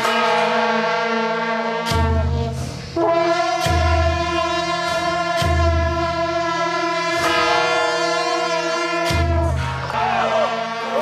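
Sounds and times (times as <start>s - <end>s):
held orchestral chords: 0.0s - 11.0s.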